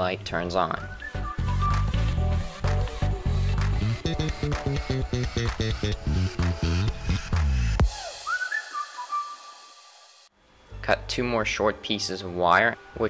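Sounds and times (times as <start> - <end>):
background music with steady beat: 0.0 - 13.0
short rising whistle-like tones: 7.9 - 10.3.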